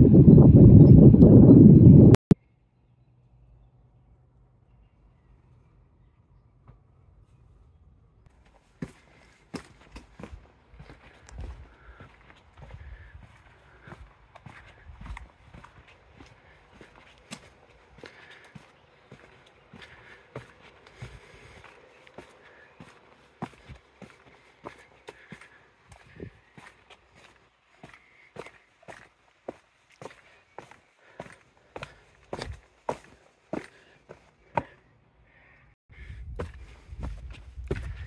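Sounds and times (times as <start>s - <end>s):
footsteps on stone and grit: 8.3s - 34.8s, 36.4s - 38.0s.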